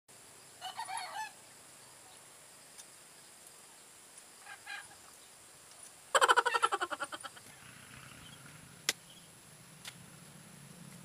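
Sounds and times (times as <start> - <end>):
rooster crowing: 0.6 - 1.4.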